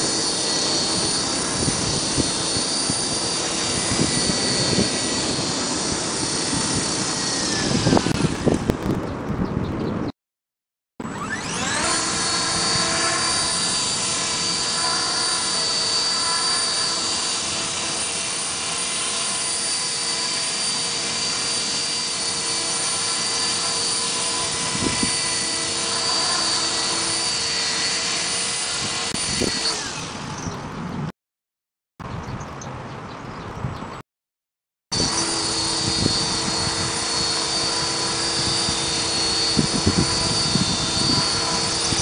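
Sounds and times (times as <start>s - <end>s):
rc helicopter motor whine: 0.0s - 9.3s, 11.0s - 30.9s, 34.9s - 42.0s.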